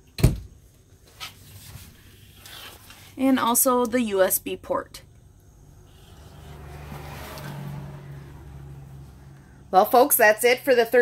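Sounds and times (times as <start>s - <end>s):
vehicle engine passing: 5.0s - 10.2s.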